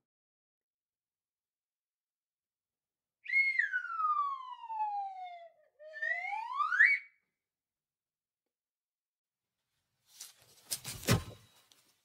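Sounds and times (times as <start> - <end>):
slide whistle glides: 3.2 - 7.3.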